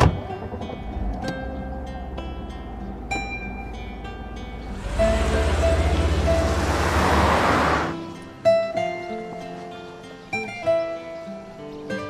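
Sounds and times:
plucked-string background music: 0.0s - 12.0s
car passing by: 2.2s - 8.2s.

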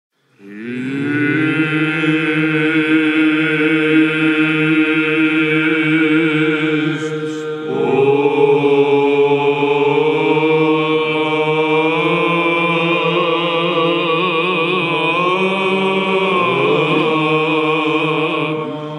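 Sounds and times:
low vocal drone: 0.3s - 18.9s
male voices chanting: 0.4s - 18.9s.

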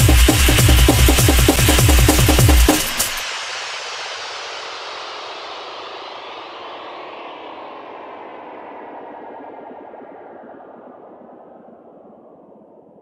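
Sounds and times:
echoing music tail: 0.0s - 11.9s.

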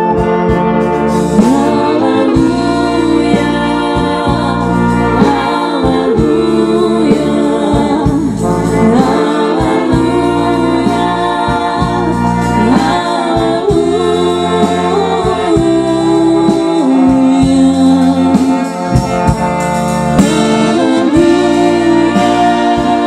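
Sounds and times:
brass band playing: 0.0s - 23.0s
low bass notes: 0.0s - 23.0s
vocalists singing: 0.0s - 23.0s.

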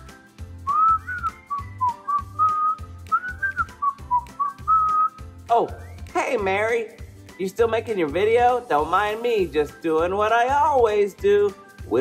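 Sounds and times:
person whistling a tune: 0.0s - 6.2s
background music with steady beat: 0.0s - 12.0s
person's voice: 5.5s - 12.0s.

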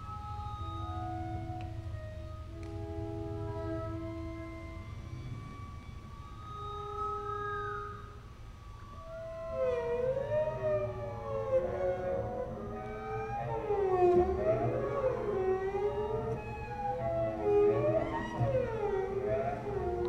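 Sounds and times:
double bass played with bow: 0.0s - 8.0s, 9.0s - 20.0s.

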